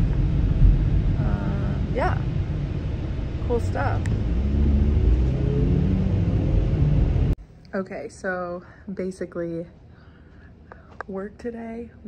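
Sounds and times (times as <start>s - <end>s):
car engine and road rumble: 0.0s - 7.4s.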